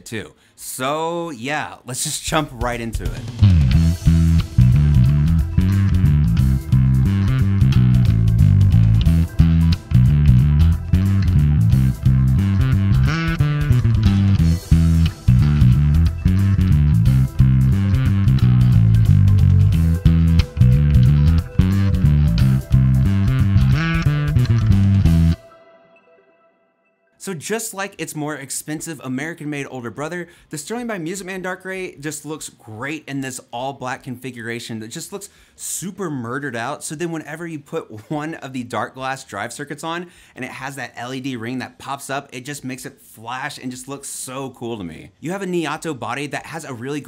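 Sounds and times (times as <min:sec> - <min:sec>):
electric bass riff: 0:02.6 - 0:25.5.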